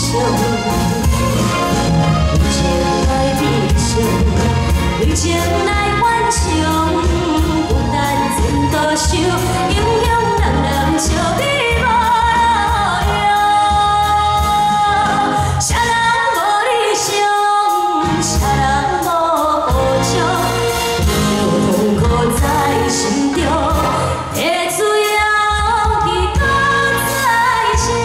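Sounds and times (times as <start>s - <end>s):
woman singing a pop song: 0.0s - 1.2s, 2.4s - 28.0s
backing music: 0.0s - 28.0s.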